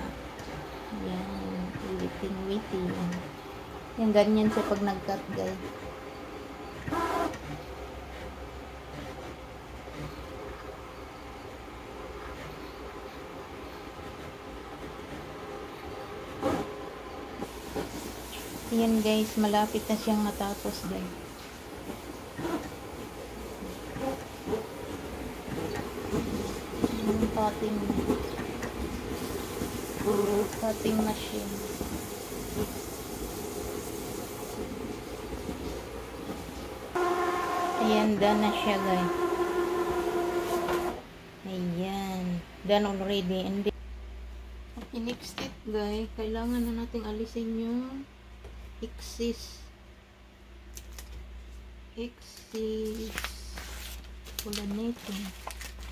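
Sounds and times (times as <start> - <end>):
cutting plotter motors whirring: 0.0 - 17.5, 22.2 - 31.4, 35.8 - 41.0
cutting plotter fluttering: 36.4 - 41.0.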